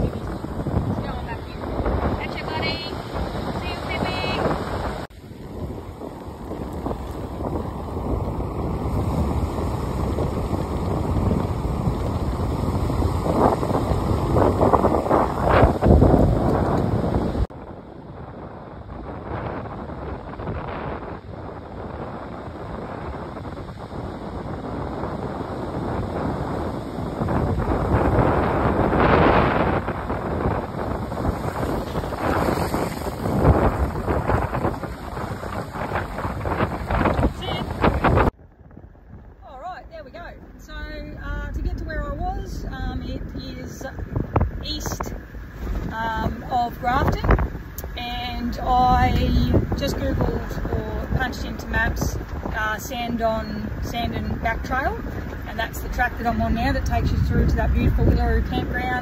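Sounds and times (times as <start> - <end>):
small waves washing on sand: 0.0 - 17.5, 20.4 - 38.3
wind buffeting microphone: 0.0 - 59.0.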